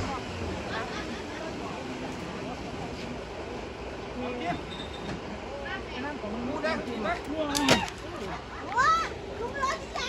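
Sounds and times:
people talking: 0:05.4 - 0:10.0.

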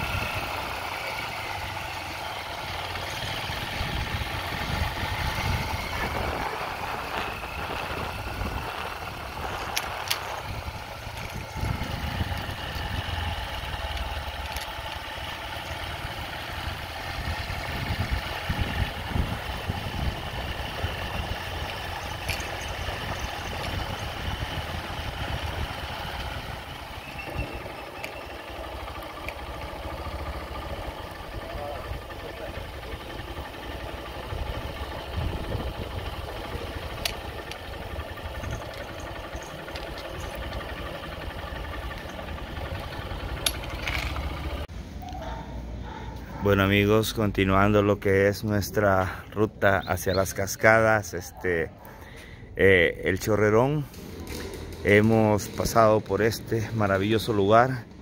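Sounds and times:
vehicle engine and road rumble: 0:00.0 - 0:58.0.

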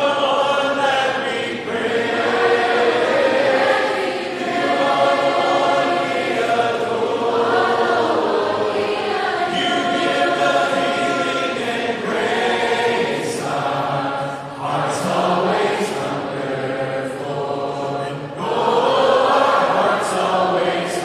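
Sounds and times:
group singing worship song: 0:00.0 - 0:21.0.

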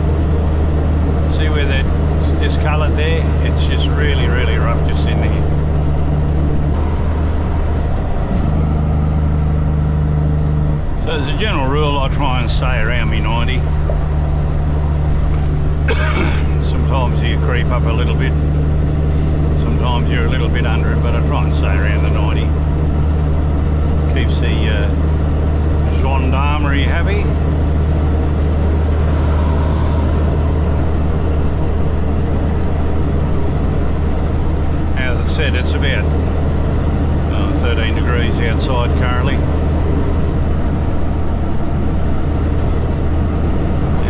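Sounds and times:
diesel engine drone: 0:00.0 - 0:44.0
road noise: 0:00.0 - 0:44.0.

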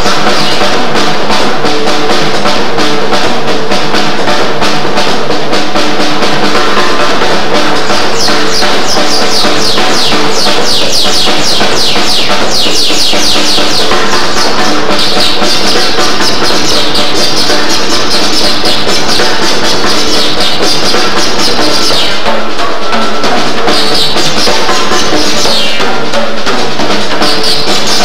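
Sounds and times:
cymbals ringing: 0:00.0 - 0:28.0
drum kit played fast: 0:00.0 - 0:28.0.

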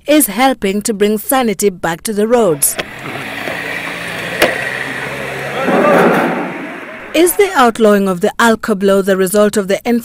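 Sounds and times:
car engines running: 0:02.4 - 0:07.8
vehicle passing: 0:02.5 - 0:07.8.

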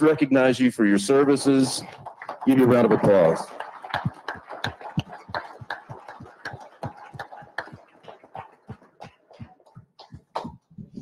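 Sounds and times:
audience applauding: 0:01.0 - 0:10.7.

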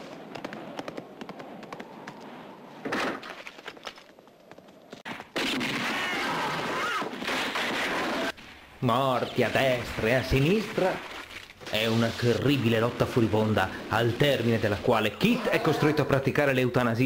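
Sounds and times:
gunshots and impacts: 0:05.0 - 0:08.4.

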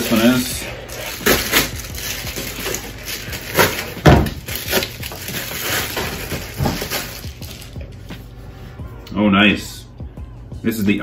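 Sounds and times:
plastic and paper crinkling: 0:00.0 - 0:08.2.

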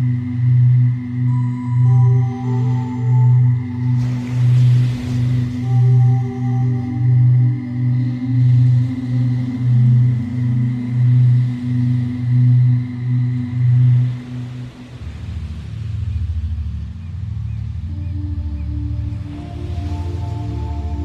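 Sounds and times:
ambient drone music: 0:00.0 - 0:21.0.

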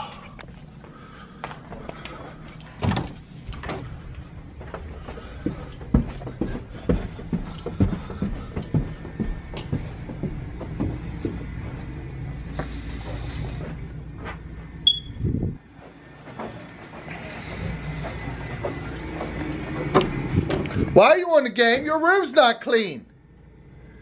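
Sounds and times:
footsteps going down stairs: 0:00.0 - 0:22.2
handheld camera rumble: 0:00.1 - 0:21.0.

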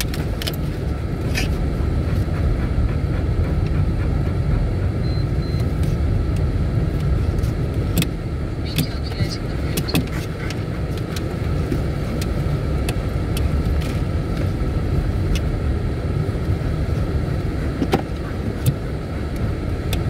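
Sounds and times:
tyre and road rumble: 0:00.0 - 0:20.0.

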